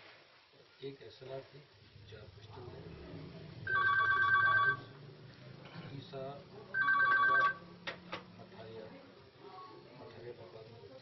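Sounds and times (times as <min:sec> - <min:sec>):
telephone ringing with warbling trill: 0:03.7 - 0:04.9, 0:06.8 - 0:07.6.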